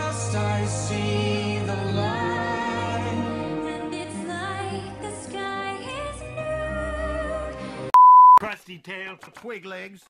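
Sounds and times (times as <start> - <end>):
sung love song with instruments: 0.0 - 7.9
censor bleep tone: 7.9 - 8.4
man speaking: 8.4 - 10.0.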